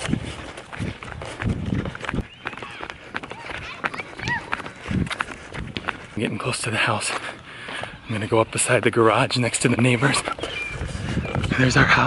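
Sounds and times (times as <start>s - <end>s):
footsteps running on concrete: 0.0s - 11.6s.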